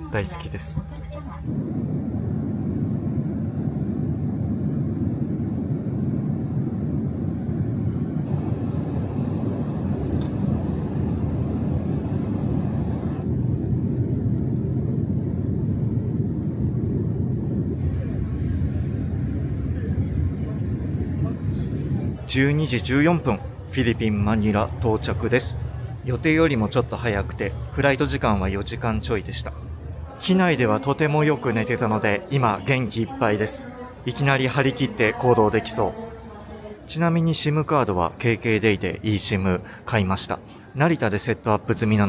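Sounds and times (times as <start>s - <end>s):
airliner cabin engine roar: 0.0s - 32.3s.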